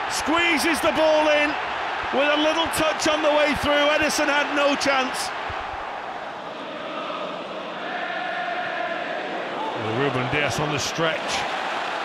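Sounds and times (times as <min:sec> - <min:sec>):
stadium crowd noise: 0:00.0 - 0:12.0
fans singing a chant: 0:06.3 - 0:09.8.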